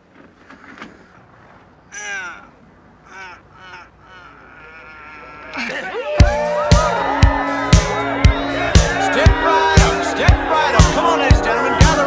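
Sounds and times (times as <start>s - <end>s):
man groaning with strain: 1.9s - 5.8s.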